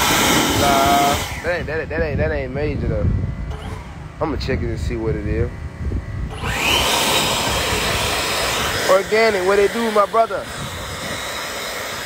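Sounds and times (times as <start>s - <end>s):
rush of air: 0.0s - 2.2s, 5.6s - 12.0s
leaf blower motor whine: 0.0s - 12.0s.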